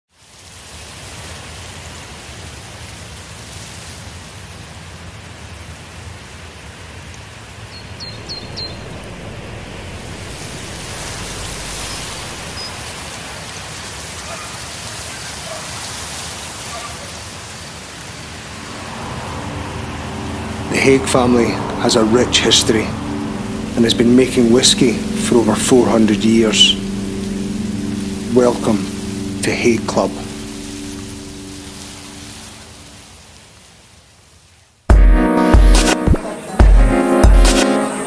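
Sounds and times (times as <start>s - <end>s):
steady rushing noise: 7.5s - 14.2s, 17.4s - 33.4s
low steady hum: 7.7s - 13.3s, 18.8s - 32.9s.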